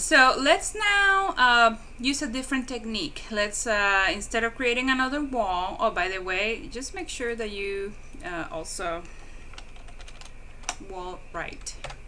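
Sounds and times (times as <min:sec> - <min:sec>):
computer keyboard typing: 0:09.5 - 0:10.9, 0:11.6 - 0:12.0.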